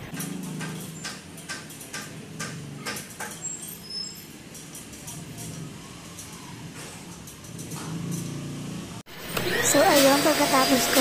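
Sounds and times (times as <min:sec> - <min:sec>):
street traffic: 0:00.0 - 0:11.0.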